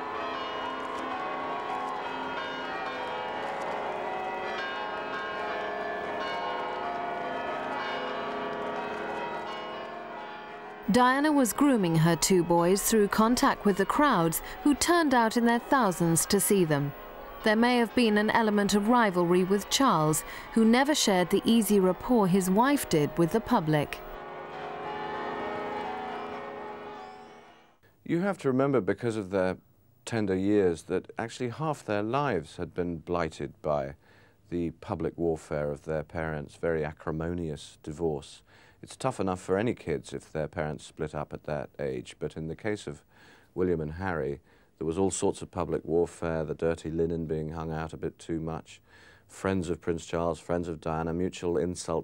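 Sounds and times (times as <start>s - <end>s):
church bells pealing: 0.0s - 27.8s
crowd voices: 10.9s - 24.2s.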